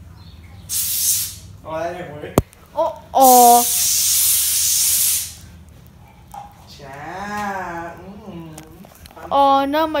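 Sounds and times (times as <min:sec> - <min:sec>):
hissing spray: 0:00.7 - 0:01.5, 0:03.2 - 0:05.5.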